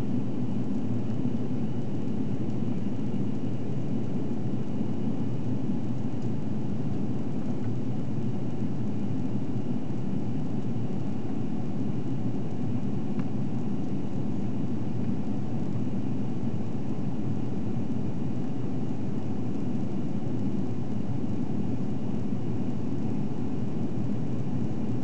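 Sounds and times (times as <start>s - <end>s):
aircraft cabin engine roar: 0.0s - 25.0s.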